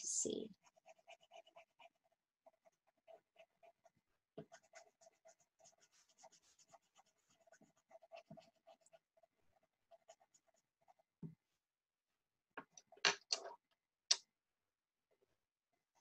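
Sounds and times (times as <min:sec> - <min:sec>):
pencil scribbling on paper: 0:00.0 - 0:11.2.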